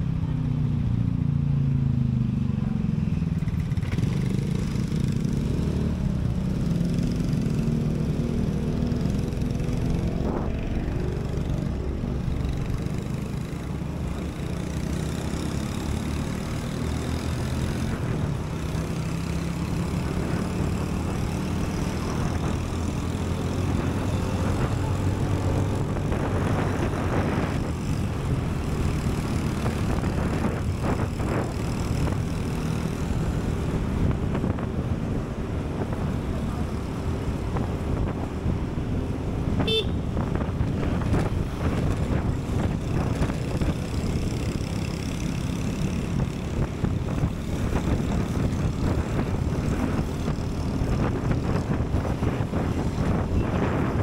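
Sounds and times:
motorbike and car traffic: 0.0 - 54.0.

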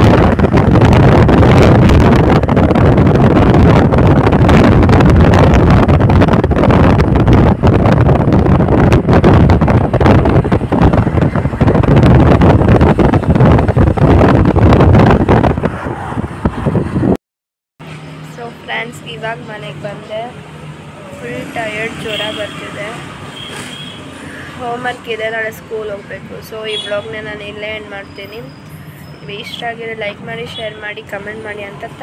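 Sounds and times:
vehicle road noise: 0.0 - 17.2, 17.8 - 32.0
wind rushing over microphone: 0.0 - 17.2, 18.1 - 32.0.

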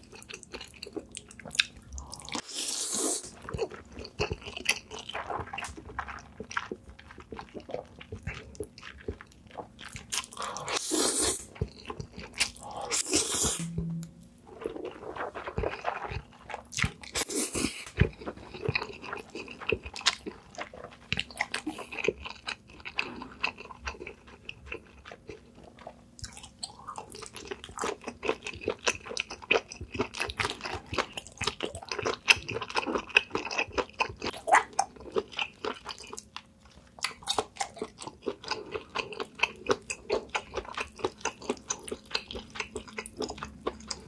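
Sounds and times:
wet chewing: 0.0 - 13.7, 14.4 - 44.0.

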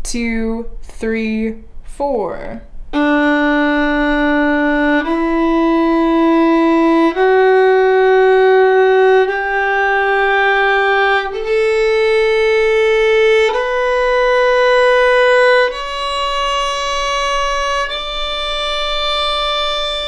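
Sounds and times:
violin playing a slow scale: 2.9 - 20.0.

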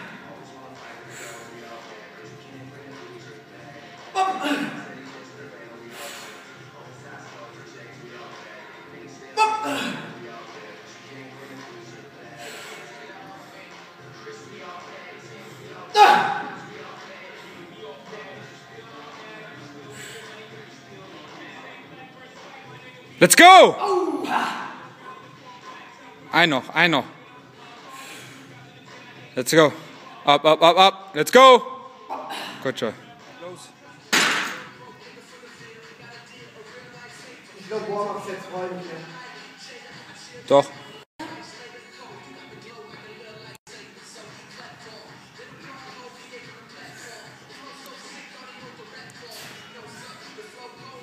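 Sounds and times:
background music: 0.0 - 51.0.

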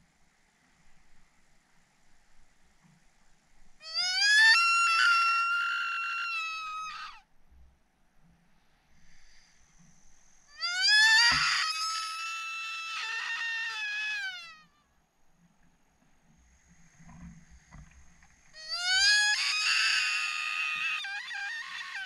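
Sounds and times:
stag screaming: 10.6 - 14.6.

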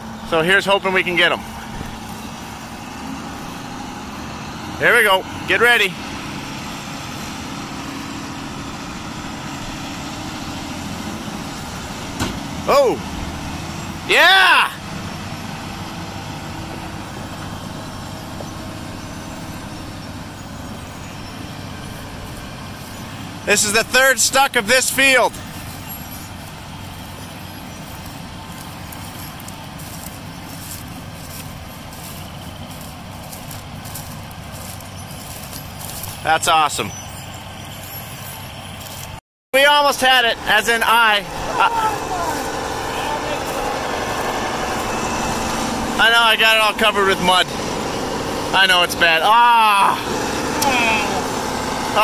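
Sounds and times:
tractor engine running under load: 0.0 - 52.0.

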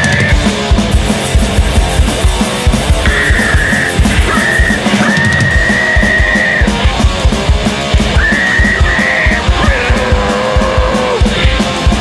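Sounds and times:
distorted electric guitar: 0.0 - 12.0
fast drumming: 0.0 - 12.0
heavy metal band playing: 0.0 - 12.0.

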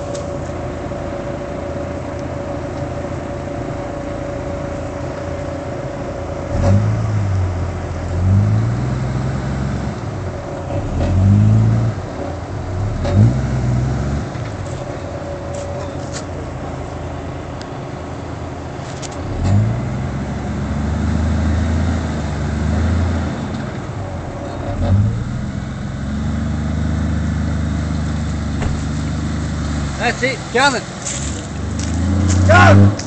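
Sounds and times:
diesel engine revving: 0.0 - 33.0.

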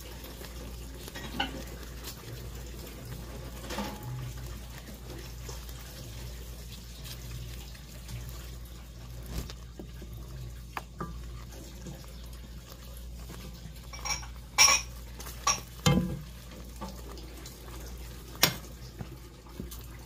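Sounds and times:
spoon stirring thick sauce: 0.0 - 20.0.

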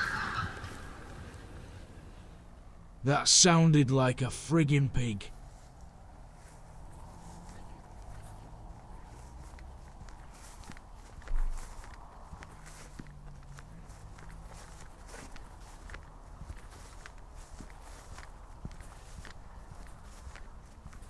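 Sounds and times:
footsteps through grass: 5.3 - 21.0.

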